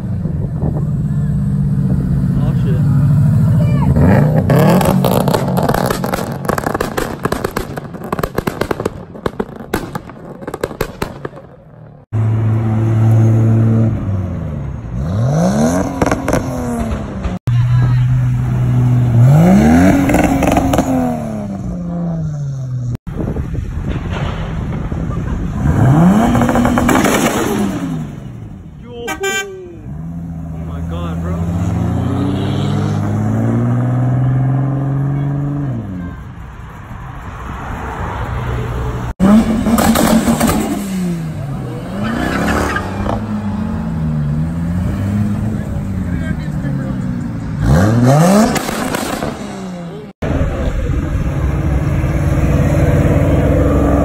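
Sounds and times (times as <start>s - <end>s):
car engines idling and revving: 0.0s - 54.0s
car accelerating away: 0.5s - 8.2s, 25.5s - 28.6s, 29.8s - 36.0s, 37.3s - 54.0s
exhaust pops and cracks: 4.8s - 11.8s, 48.4s - 49.4s.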